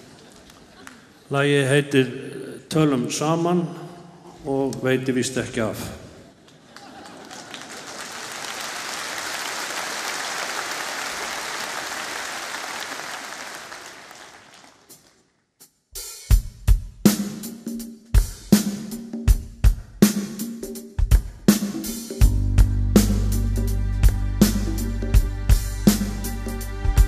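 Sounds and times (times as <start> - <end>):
audience applauding: 6.4 - 15.2
band playing a song: 21.0 - 27.0.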